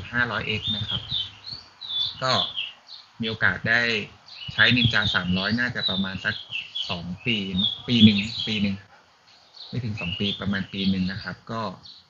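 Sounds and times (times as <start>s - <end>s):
man speaking: 0.0s - 1.4s, 2.1s - 2.6s, 3.2s - 9.0s, 9.7s - 11.8s
small birds chirping: 0.0s - 12.0s.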